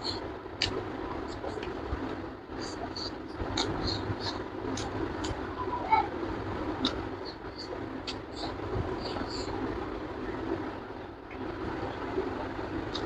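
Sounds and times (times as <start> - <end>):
low background rumble: 0.0 - 13.0.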